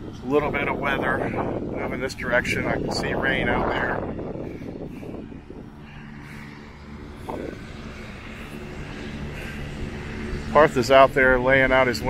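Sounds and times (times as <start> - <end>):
engine running steadily: 0.0 - 12.0
wind buffeting microphone: 0.0 - 12.0.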